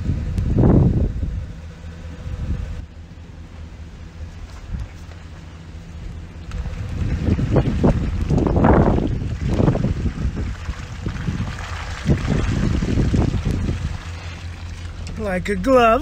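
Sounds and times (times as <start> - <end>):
wind on microphone: 0.0 - 1.6, 6.5 - 14.4
truck engine rumble: 0.0 - 16.0
tyres rolling over gravel: 4.3 - 16.0.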